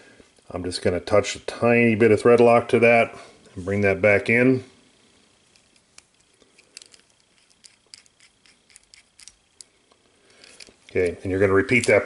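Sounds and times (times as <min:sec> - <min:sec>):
light clicks of small parts: 0:05.5 - 0:12.0.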